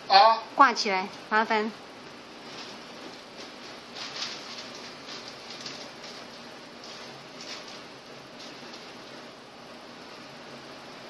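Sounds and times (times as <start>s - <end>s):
paper rustling: 2.4s - 9.4s.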